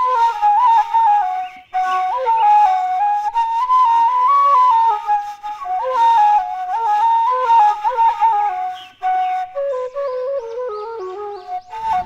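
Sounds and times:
end-blown flute melody: 0:00.0 - 0:12.0.

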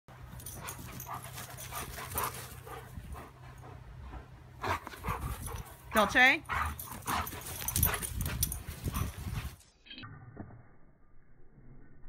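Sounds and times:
dogs panting: 0:00.3 - 0:09.7.

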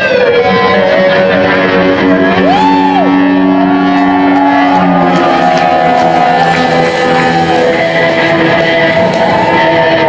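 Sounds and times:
electric slide guitar notes: 0:00.0 - 0:10.0
rock band playing: 0:00.0 - 0:10.0.

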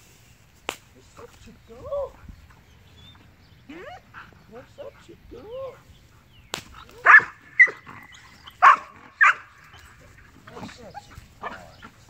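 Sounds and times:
dog whining and yelping: 0:07.0 - 0:10.1.

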